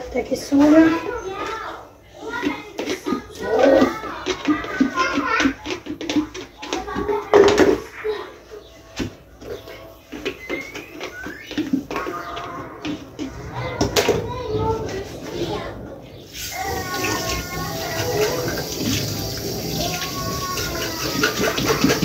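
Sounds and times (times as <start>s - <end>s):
child's voice: 0.0s - 5.7s, 12.0s - 18.7s, 19.7s - 22.0s
indistinct talk: 11.9s - 22.0s
background music: 16.6s - 22.0s.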